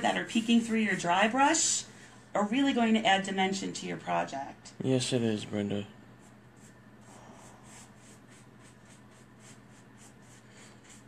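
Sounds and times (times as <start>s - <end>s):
paintbrush scratchy strokes: 6.2s - 11.0s.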